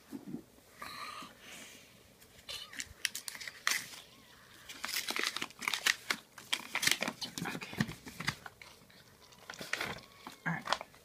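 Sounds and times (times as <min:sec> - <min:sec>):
crinkling and crackling: 0:02.2 - 0:11.0.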